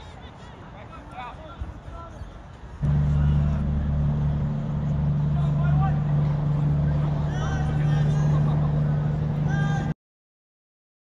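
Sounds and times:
distant shouts: 0:00.0 - 0:10.0
loud low drone: 0:02.8 - 0:09.9.

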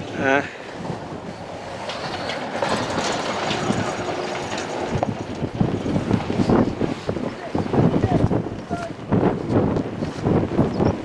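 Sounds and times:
wind on microphone: 0:00.0 - 0:11.0
prayer flags flapping: 0:01.7 - 0:11.0.

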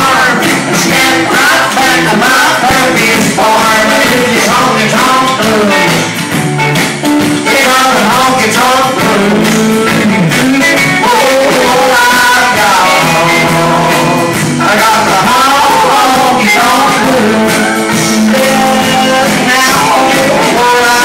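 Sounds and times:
man singing: 0:00.0 - 0:06.3, 0:07.2 - 0:21.0
live rock and roll band: 0:00.0 - 0:21.0.

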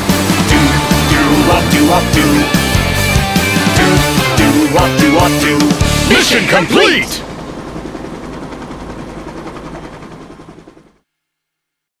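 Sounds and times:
cartoon helicopter rotor chopping: 0:00.0 - 0:11.0.

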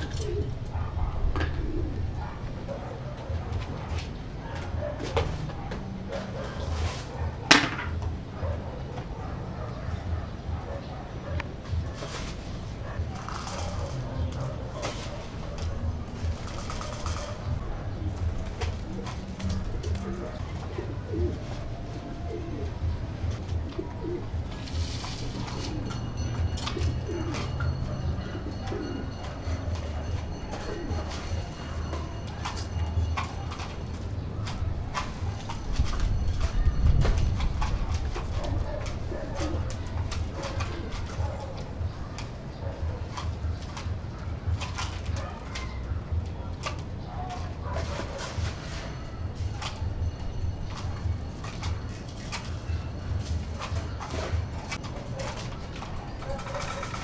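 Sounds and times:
cages and feeders clicking: 0:00.0 - 0:57.0
pigeons cooing: 0:00.0 - 0:57.0.

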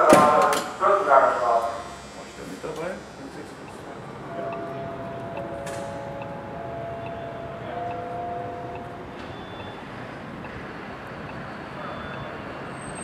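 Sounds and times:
faint steady whine: 0:00.0 - 0:13.0
street traffic: 0:00.0 - 0:13.0.

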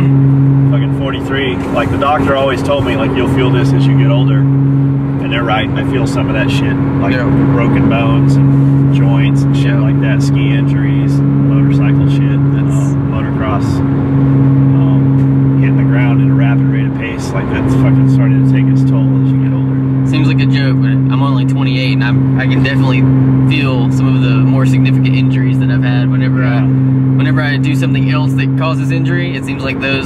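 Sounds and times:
car engine droning in cabin: 0:00.0 - 0:30.0.

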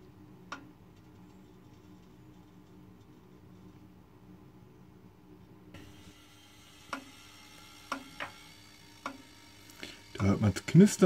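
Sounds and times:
gas heater flame crackling: 0:05.7 - 0:11.0.

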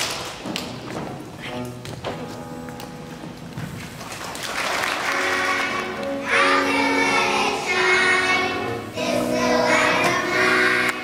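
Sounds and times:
piano accompaniment: 0:00.6 - 0:11.0
children's choir singing: 0:04.7 - 0:11.0.

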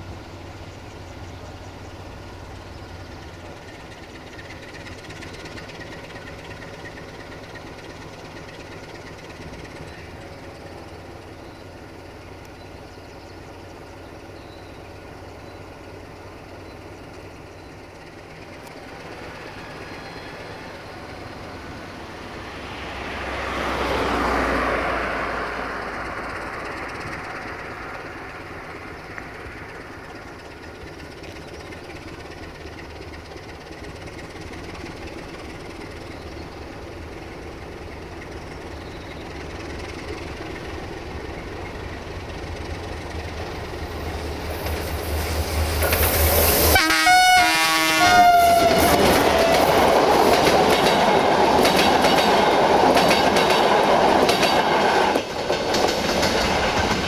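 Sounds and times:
diesel locomotive engine rumble: 0:00.0 - 0:57.0
train wheels clacking over rail joints: 0:03.0 - 0:11.6, 0:26.0 - 0:46.8, 0:48.1 - 0:57.0
locomotive horn: 0:46.6 - 0:49.9.

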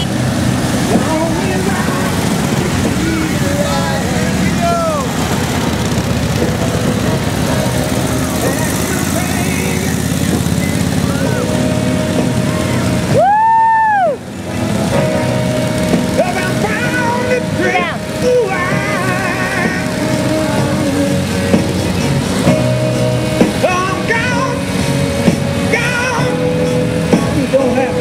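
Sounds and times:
whistle blast: 0:00.0 - 0:00.2, 0:09.8 - 0:11.6
motorcycles rumbling: 0:00.0 - 0:28.0.

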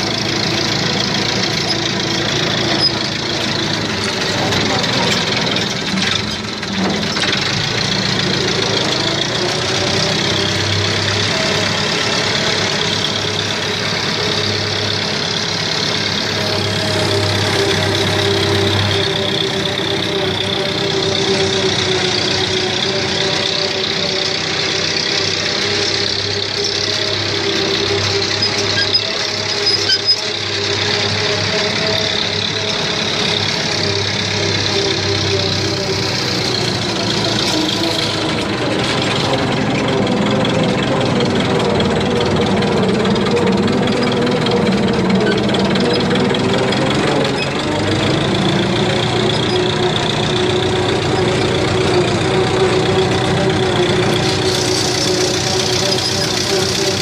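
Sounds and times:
tractor engine running: 0:00.0 - 0:57.0.

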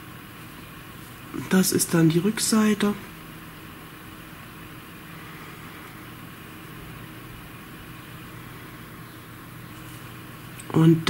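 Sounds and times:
background hiss: 0:00.0 - 0:11.0
faint low hum: 0:00.0 - 0:11.0.

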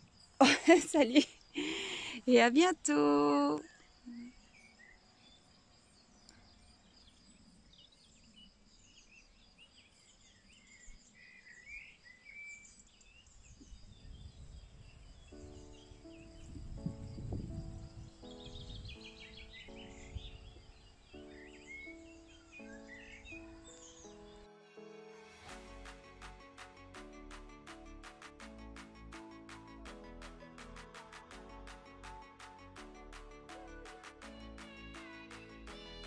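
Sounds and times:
gentle music of held notes: 0:15.3 - 0:25.9
birds chirping: 0:18.2 - 0:24.5.

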